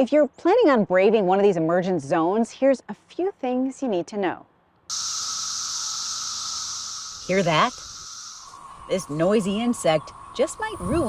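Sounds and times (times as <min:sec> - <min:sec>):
cicadas buzzing drone: 0:04.9 - 0:11.0.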